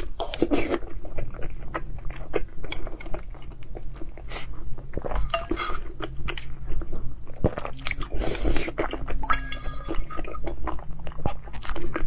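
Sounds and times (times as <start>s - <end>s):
wet chewing: 0.0s - 12.0s.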